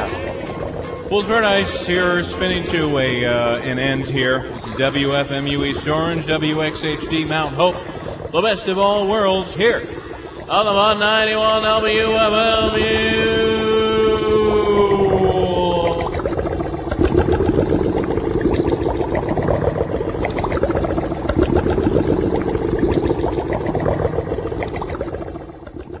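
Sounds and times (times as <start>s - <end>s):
crackly drone: 0.0s - 26.0s
steady low hum: 0.0s - 26.0s.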